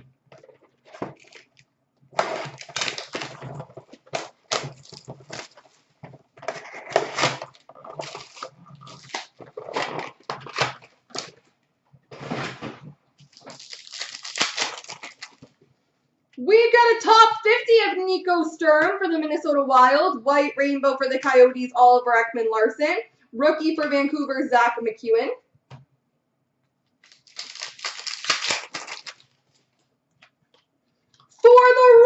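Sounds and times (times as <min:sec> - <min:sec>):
cards and packaging handled: 0:00.4 - 0:01.6, 0:02.2 - 0:05.8, 0:06.4 - 0:11.5, 0:12.6 - 0:15.5, 0:27.0 - 0:29.7
wrapper crinkling and tearing: 0:00.9 - 0:01.6, 0:02.2 - 0:05.8, 0:06.4 - 0:11.4, 0:13.2 - 0:15.5, 0:27.0 - 0:29.7.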